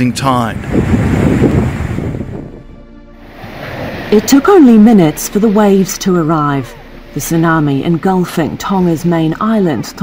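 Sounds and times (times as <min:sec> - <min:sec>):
wind buffeting microphone: 0:00.0 - 0:04.8.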